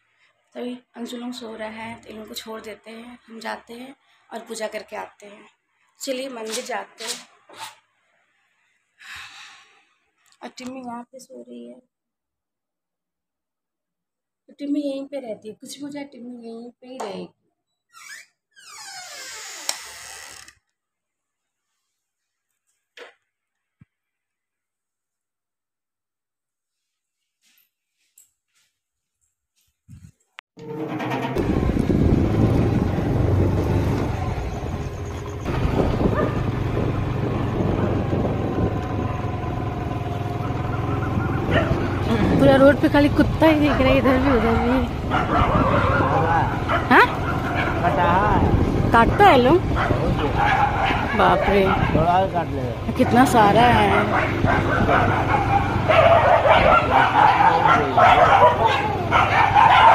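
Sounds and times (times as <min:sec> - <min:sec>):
hinge creaking: 0:17.9 - 0:20.7, 0:30.6 - 0:31.9
low steady rumble: 0:30.8 - 0:40.4
dogs barking and yipping: 0:34.3 - 0:36.6, 0:40.2 - 0:42.4, 0:43.4 - 0:59.9.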